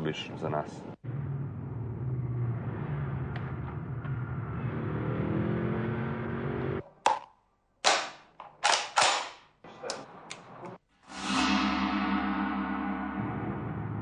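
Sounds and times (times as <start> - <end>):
car engine accelerating: 1.0 - 6.8
sharp cracks: 7.1 - 9.5.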